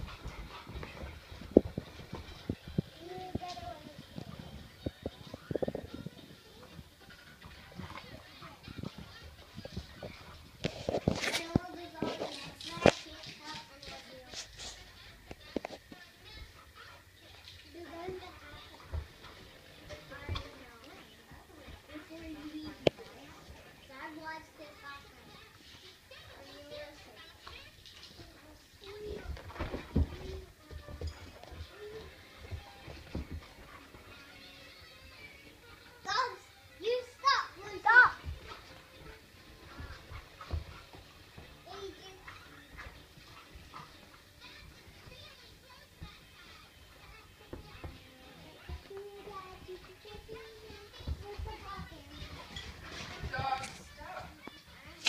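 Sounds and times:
dogs scuffling and thumping: 0.0s - 55.0s.

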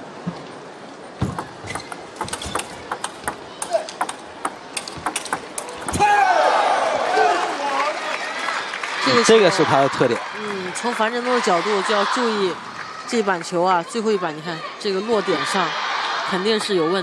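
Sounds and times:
table tennis ball clicks: 1.3s - 6.0s
people shouting and cheering: 5.8s - 13.2s.

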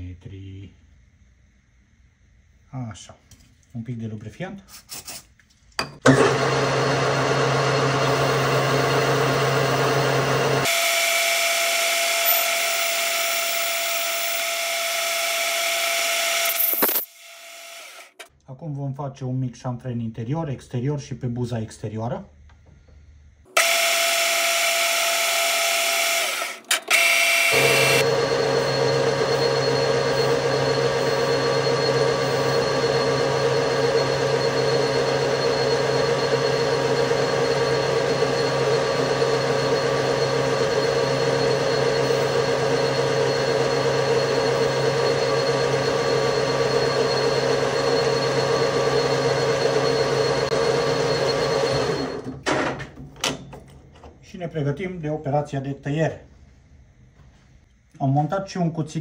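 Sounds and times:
metal lathe running: 6.1s - 18.2s, 23.6s - 52.3s.

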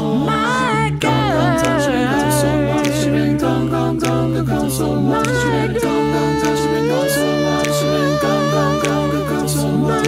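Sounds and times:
a cappella choir singing: 0.0s - 10.0s
low bass voice line: 0.0s - 10.0s.

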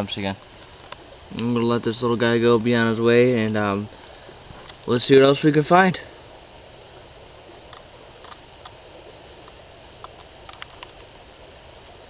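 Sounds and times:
steady background hiss: 0.0s - 12.0s
handling clicks and rustles: 9.4s - 11.1s.

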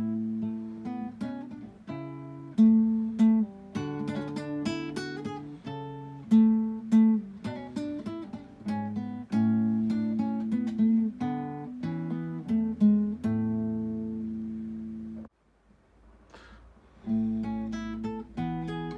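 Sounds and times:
solo acoustic guitar: 0.0s - 15.3s, 16.9s - 18.9s.

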